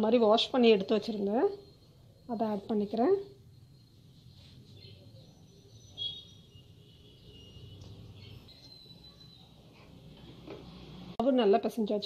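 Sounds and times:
faint high birdlike chirps: 0.7 - 10.0.

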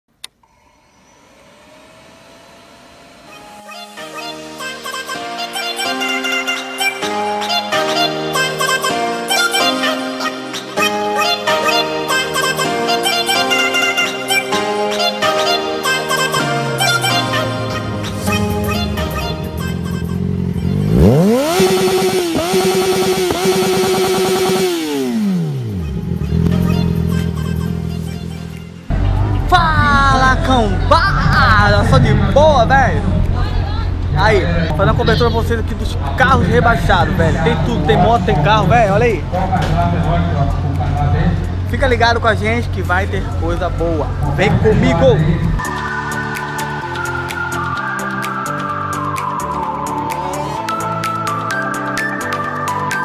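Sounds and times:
music: 0.2 - 53.0
road noise: 16.8 - 51.6
motorcycle engine running: 17.7 - 45.6.

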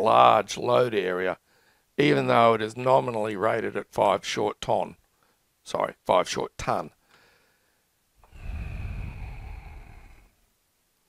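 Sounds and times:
man exhaling into microphone: 8.2 - 10.4.

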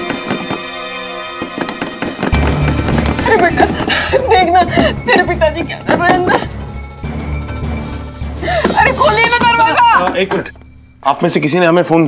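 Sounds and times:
palms banging on a door: 0.0 - 3.4
voices shouting: 8.7 - 10.6.

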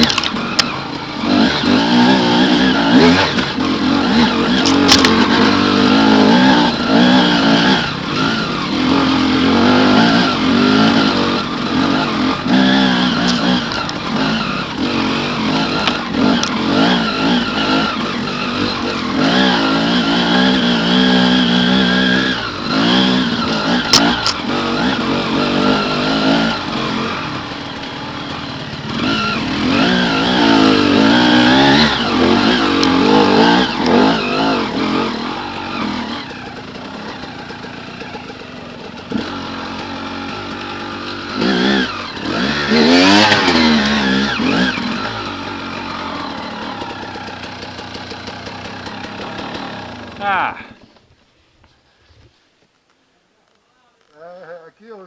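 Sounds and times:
motorcycle engine revving: 0.0 - 51.0.

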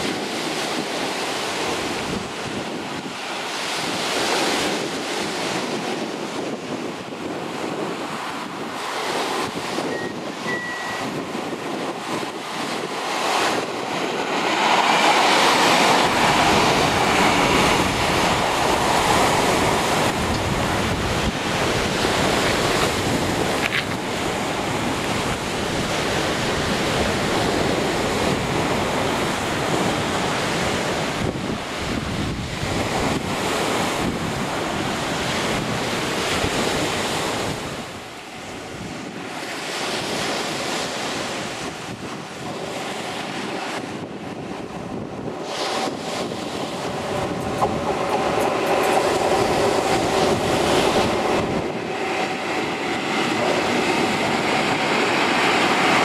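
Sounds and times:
surf against sea wall: 0.0 - 56.0
wind buffeting microphone: 0.0 - 56.0.

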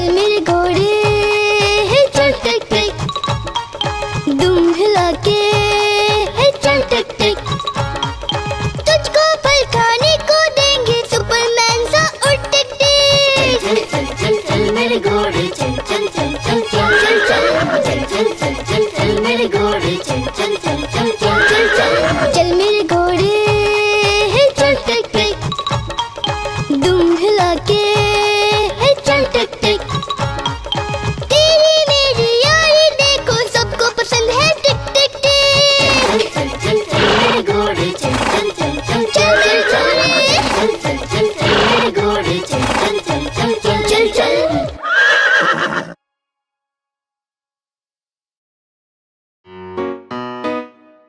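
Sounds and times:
background music: 0.0 - 46.0, 49.5 - 51.0
cartoon horse whinny: 16.8 - 18.0, 21.3 - 22.4, 37.0 - 37.4, 39.2 - 40.7, 41.4 - 41.9, 44.5 - 46.0.

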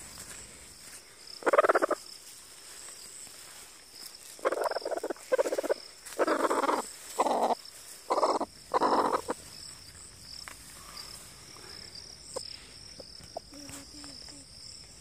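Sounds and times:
high insect whine: 0.0 - 15.0.

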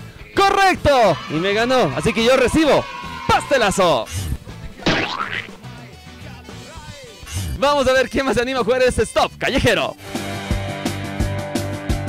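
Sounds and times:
cartoon sweeping pitch effect: 4.9 - 5.6.

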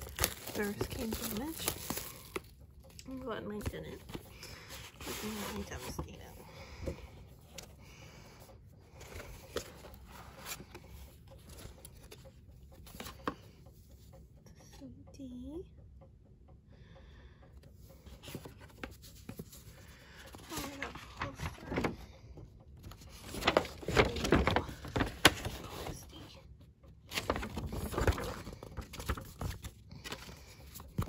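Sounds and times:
cardboard box handling: 0.0 - 2.5, 4.0 - 7.7.

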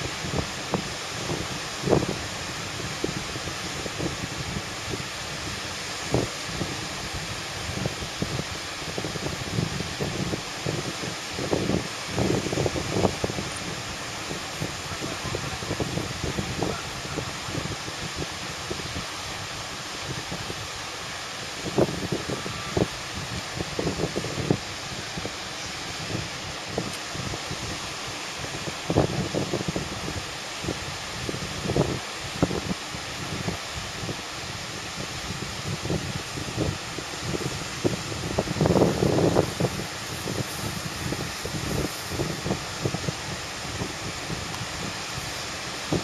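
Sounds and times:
rush of wind: 0.0 - 46.0
wind buffeting microphone: 0.0 - 46.0.

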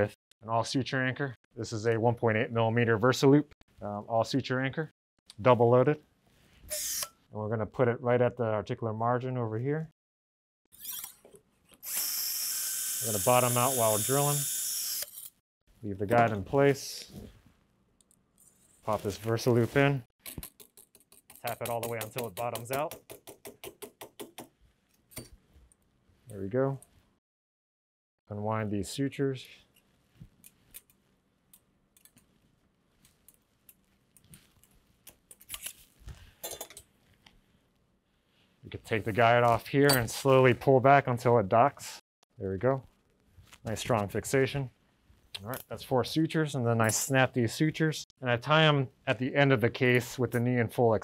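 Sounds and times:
surgical instruments clicking: 20.2 - 24.4.

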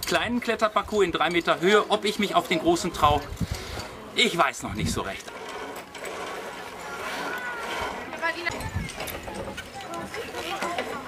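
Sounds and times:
young people chattering: 0.4 - 11.0.

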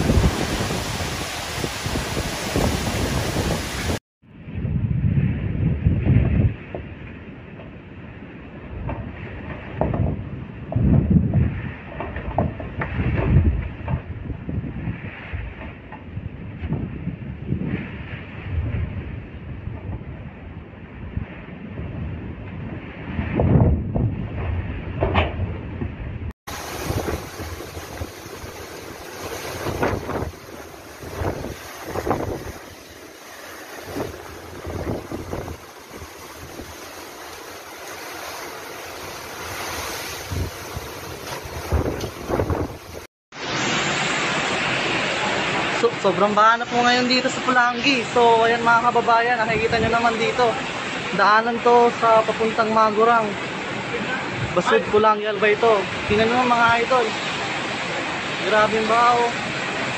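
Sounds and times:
wind buffeting microphone: 0.0 - 43.1, 46.5 - 51.2
gale wind and rain hiss: 0.0 - 59.9
waves surging over seawall: 0.0 - 59.9.

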